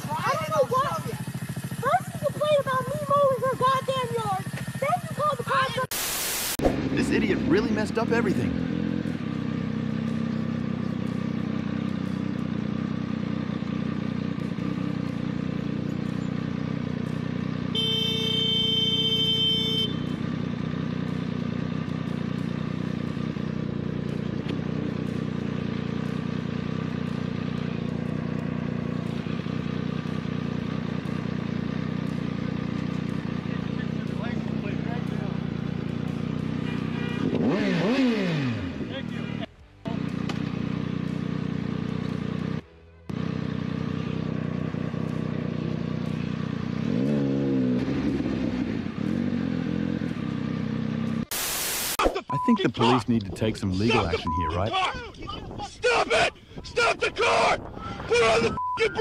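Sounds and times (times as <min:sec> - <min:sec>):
motorcycle engine idling: 0:00.0 - 0:05.8, 0:06.8 - 0:51.2
motorcycle engine revving: 0:00.0 - 0:05.9, 0:06.6 - 0:51.9
horn: 0:36.6 - 0:38.2.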